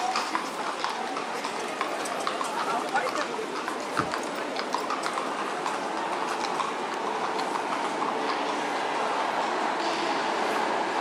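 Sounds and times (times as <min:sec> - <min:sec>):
hooves clopping on stone: 0:00.0 - 0:08.6
carriage wheels rumbling on paving: 0:00.0 - 0:10.2.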